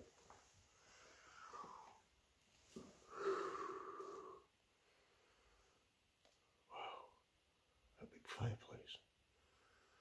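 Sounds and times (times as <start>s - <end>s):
soft falling breath: 0.2s - 5.8s
person exhaling breathily: 3.0s - 4.5s.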